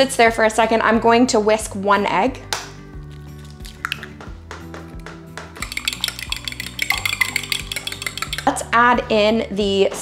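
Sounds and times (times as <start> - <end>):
background music: 0.0 - 10.0
light taps on glass bowl: 5.6 - 8.6
fork whisking egg in glass bowl: 5.6 - 8.7.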